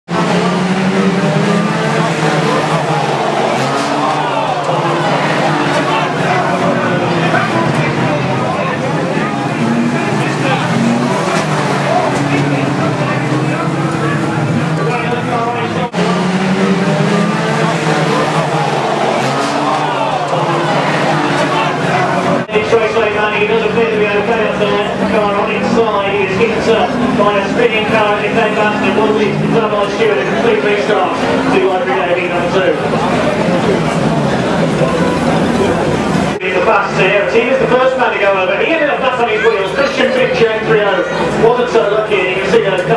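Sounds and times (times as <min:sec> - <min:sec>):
racing car engines revving: 0:00.0 - 0:42.9.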